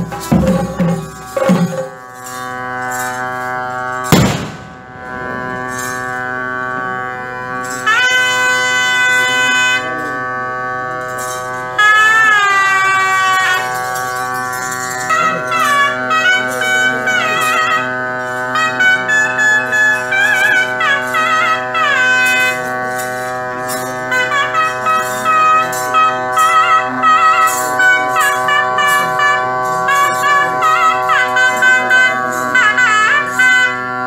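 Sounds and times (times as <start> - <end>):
drum beats: 0.0 - 2.1, 4.1 - 5.0
double-reed pipes drone: 0.0 - 34.0
ornamented reed pipe melody: 0.0 - 34.0
loud drum strike: 4.1 - 5.0.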